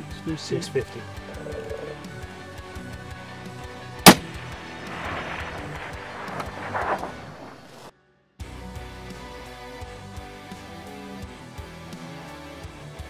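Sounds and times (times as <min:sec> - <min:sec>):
background music: 0:00.0 - 0:13.0
suppressed rifle shot: 0:04.0 - 0:07.9.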